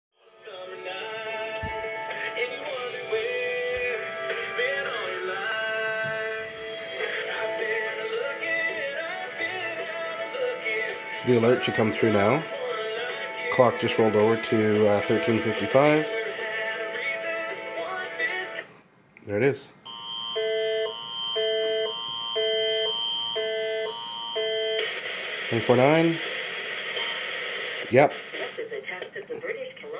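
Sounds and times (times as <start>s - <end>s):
song with singing on radio: 0.2s - 18.9s, 23.8s - 29.9s.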